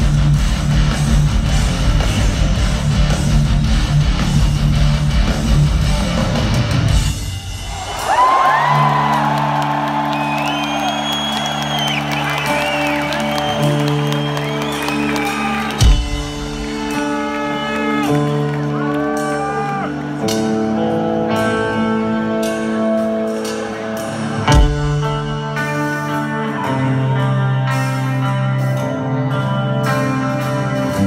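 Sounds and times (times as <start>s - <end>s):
crowd whooping and cheering: 7.4s - 20.4s.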